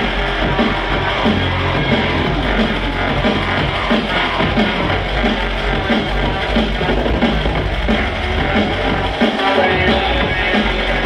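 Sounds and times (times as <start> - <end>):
drum and bass music over sound system: 0.0 - 11.0.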